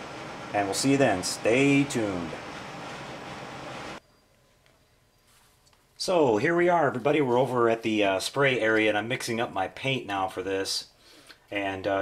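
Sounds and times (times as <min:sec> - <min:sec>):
air conditioner rushing: 0:00.0 - 0:04.0.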